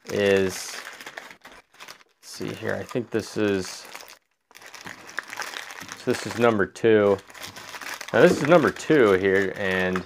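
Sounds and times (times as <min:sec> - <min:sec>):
wrapper crinkling: 0:00.0 - 0:10.0.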